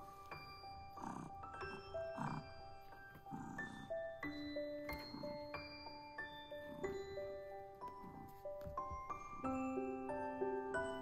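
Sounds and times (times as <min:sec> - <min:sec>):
kitten grunts: 0:00.9 - 0:04.0.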